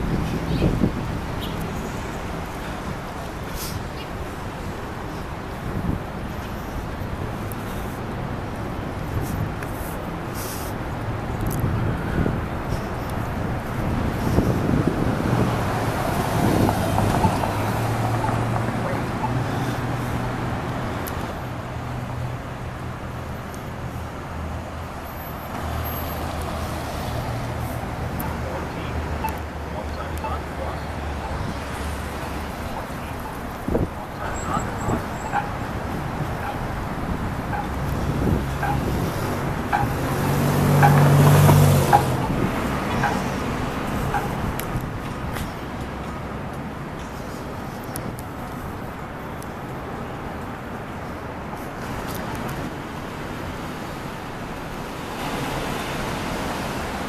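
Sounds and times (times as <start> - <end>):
vehicle engine: 0.0 - 54.0
cars passing: 0.0 - 57.0
street traffic: 0.0 - 57.0.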